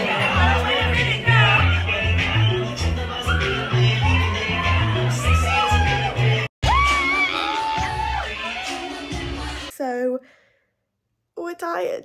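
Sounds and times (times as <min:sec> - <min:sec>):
loud pop music with vocals: 0:00.0 - 0:09.7.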